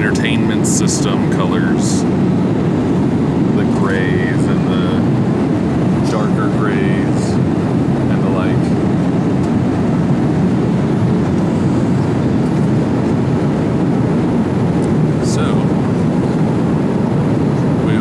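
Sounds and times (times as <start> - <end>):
airliner cabin roar: 0.0 - 18.0.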